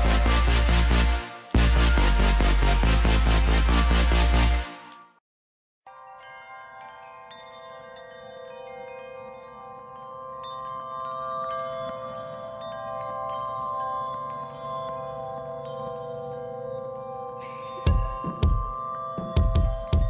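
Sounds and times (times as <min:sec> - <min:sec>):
ambient chime and bell music: 0:00.0 - 0:04.9, 0:05.9 - 0:20.0.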